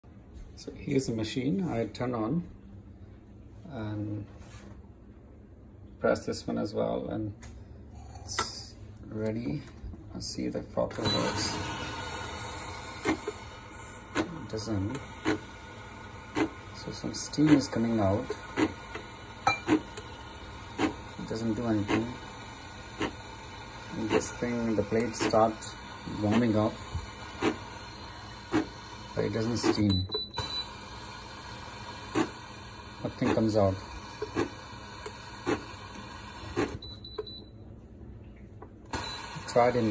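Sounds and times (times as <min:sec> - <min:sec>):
low background hum: 0:00.0 - 0:39.9
steam wand hissing: 0:11.1 - 0:29.8, 0:30.6 - 0:36.8.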